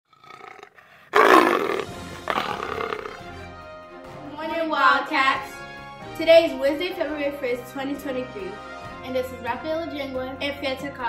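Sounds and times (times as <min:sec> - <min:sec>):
big cat roar: 0:00.1 - 0:03.3.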